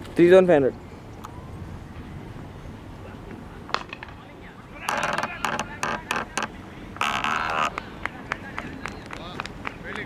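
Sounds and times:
people clapping: 0:07.3 - 0:10.0.

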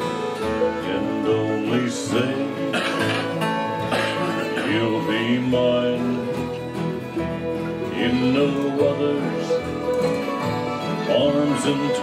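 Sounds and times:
acoustic guitar strumming: 0:00.0 - 0:12.0
sliding melody line: 0:00.0 - 0:12.0.

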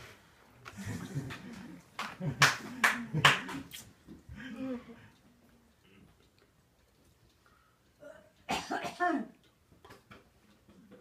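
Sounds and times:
person coughing: 0:08.0 - 0:09.4.

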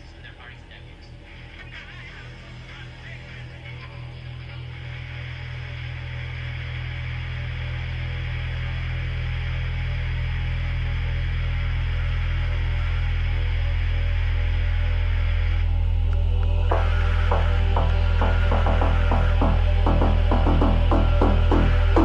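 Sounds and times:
deep bass drone: 0:00.0 - 0:22.0.

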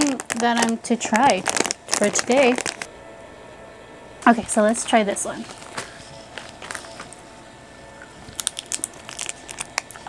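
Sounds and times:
person chewing candy: 0:01.3 - 0:02.9, 0:08.3 - 0:10.0.

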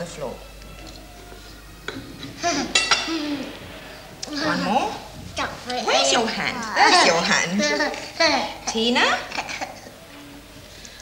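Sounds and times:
crockery ringing clink: 0:02.6 - 0:03.2.

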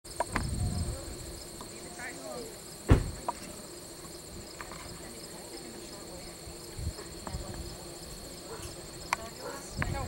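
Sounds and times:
insect chorus chirring: 0:00.0 - 0:10.0.

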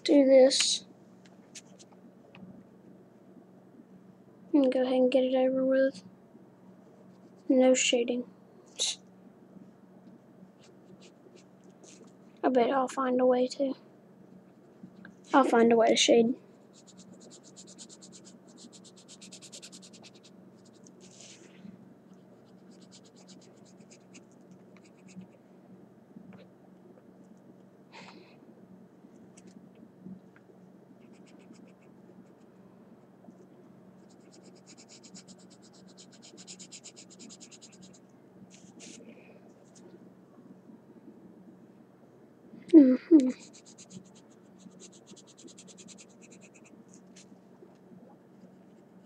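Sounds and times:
pencil scribbling on paper: 0:16.7 - 0:21.4, 0:22.5 - 0:24.2, 0:34.0 - 0:38.0, 0:43.4 - 0:46.7.

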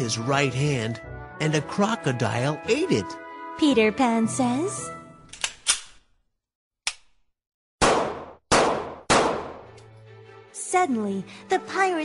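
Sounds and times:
cartoon gunshot crack: 0:07.8 - 0:09.7
loud cartoon gun bangs: 0:07.8 - 0:09.7.

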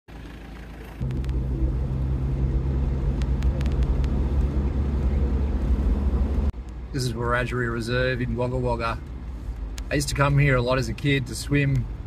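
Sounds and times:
car engine drone: 0:00.1 - 0:12.0
road rumble: 0:00.1 - 0:12.0.

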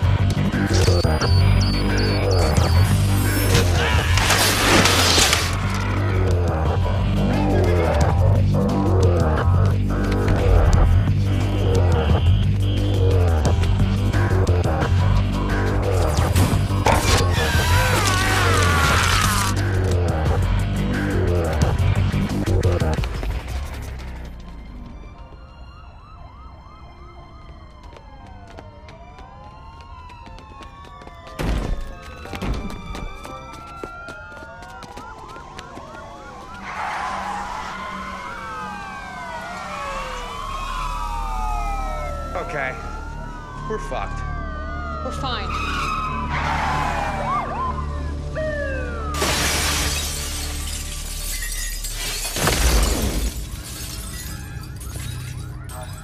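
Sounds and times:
low film score: 0:00.0 - 0:25.4
police sirens wailing: 0:00.0 - 0:56.0
loud shattering burst: 0:49.2 - 0:53.9.

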